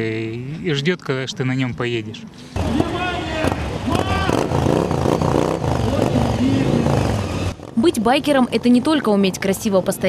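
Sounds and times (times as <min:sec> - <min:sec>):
motorcycle engines running: 0:02.6 - 0:10.0.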